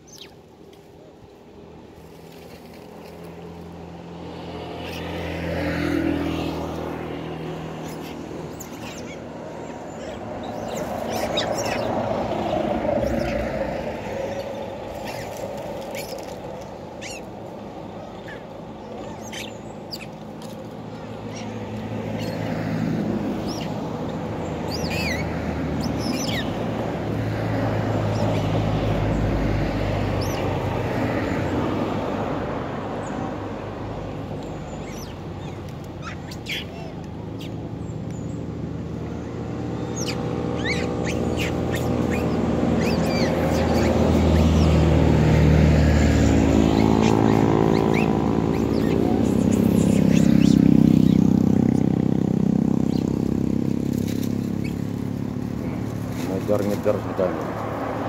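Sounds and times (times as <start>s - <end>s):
monkeys chirping: 0.0s - 0.4s, 4.6s - 57.4s
vehicles passing: 0.0s - 58.0s.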